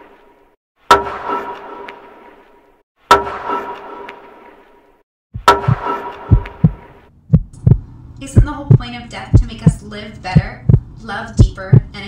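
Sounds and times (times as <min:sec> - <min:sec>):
heartbeat thumps: 0:05.4 - 0:12.0
sustained hum: 0:05.4 - 0:12.0.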